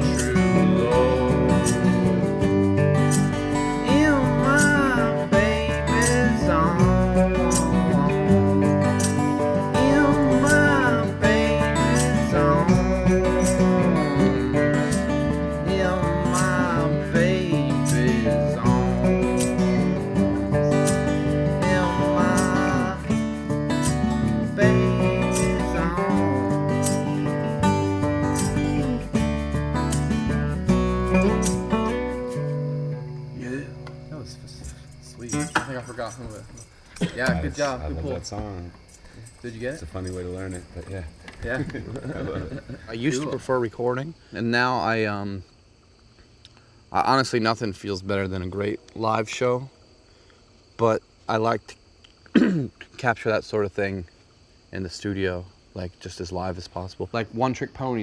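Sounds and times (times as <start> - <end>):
acoustic guitars playing: 0.0 - 45.5.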